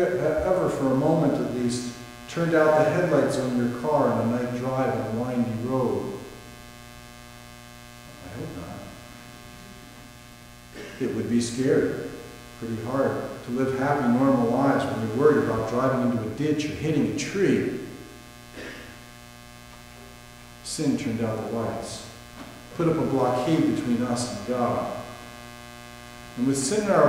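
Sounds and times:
electrical mains hum: 0.0s - 27.0s
man's voice: 20.7s - 22.1s, 22.8s - 25.0s, 26.4s - 27.0s.

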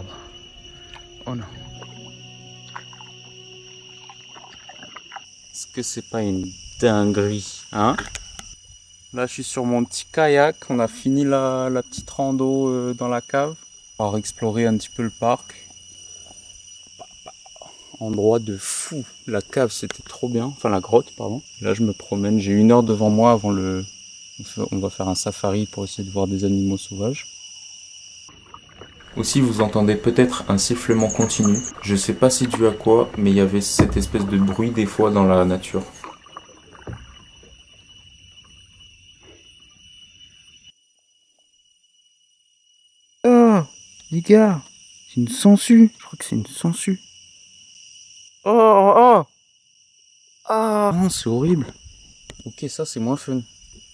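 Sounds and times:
high-pitched insect whistle: 0.0s - 53.9s
kayak paddle strokes in water: 28.3s - 37.9s
paddle knock: 28.4s - 37.7s
high steady whistle: 30.4s - 33.0s.

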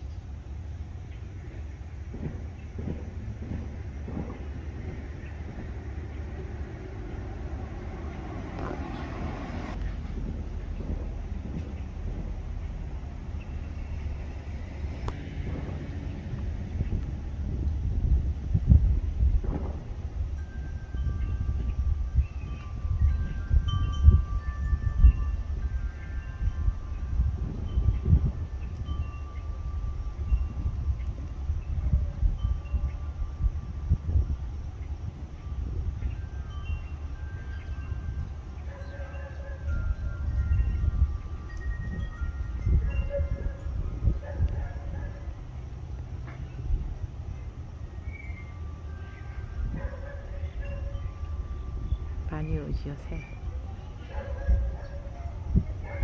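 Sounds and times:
low steady rumble: 0.0s - 38.6s
wind chime ringing: 20.3s - 44.9s, 47.3s - 54.1s.

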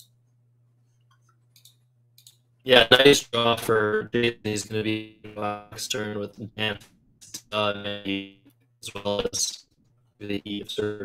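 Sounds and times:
low steady hum: 0.0s - 11.0s
faint clicks: 1.0s - 2.4s.

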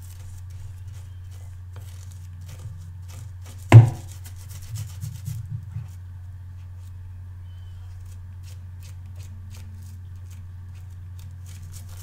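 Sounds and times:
brush bristles scrubbing on pad: 0.0s - 6.0s
sharp knock: 3.7s - 4.1s
soft bumps: 3.7s - 4.1s, 4.7s - 6.0s.

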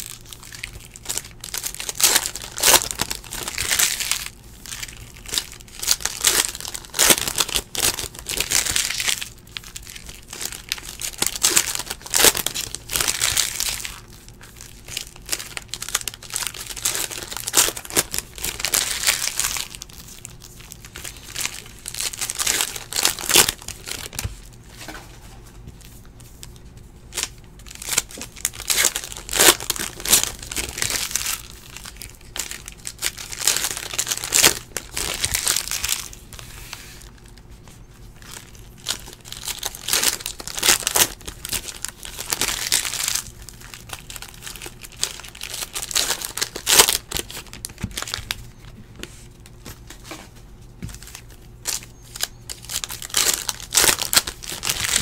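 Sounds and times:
foil wrappers crinkling and tearing: 0.0s - 55.0s.

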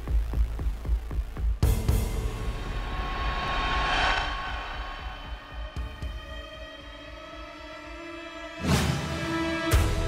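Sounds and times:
dramatic background music: 0.2s - 10.0s.

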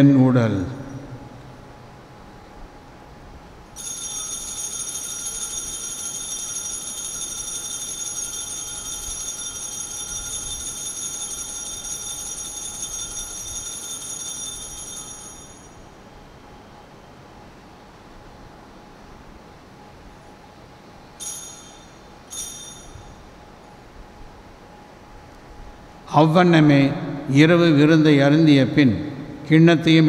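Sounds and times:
altar bell ringing: 3.8s - 16.0s, 21.2s - 23.6s.

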